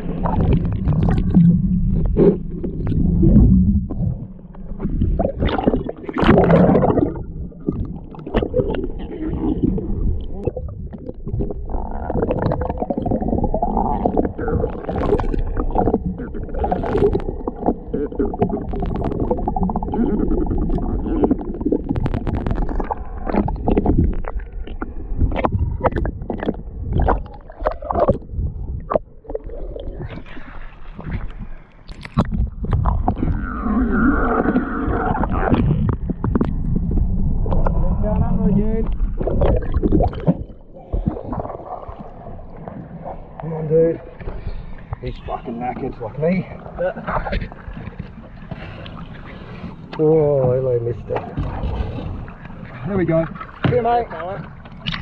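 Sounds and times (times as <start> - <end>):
water rushing and gurgling: 0.0 - 55.0
sharp underwater clicks and pops: 0.2 - 9.0, 9.6 - 30.3, 31.0 - 33.5, 34.4 - 42.9, 54.6 - 55.0.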